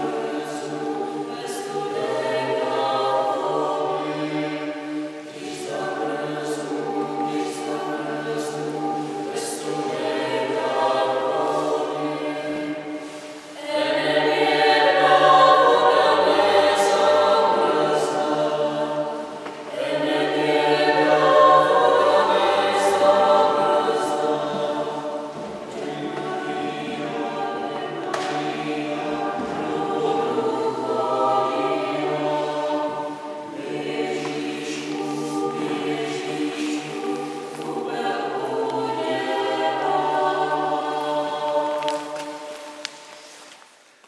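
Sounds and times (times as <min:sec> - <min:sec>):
vocal ensemble singing chords: 0:00.0 - 0:43.5.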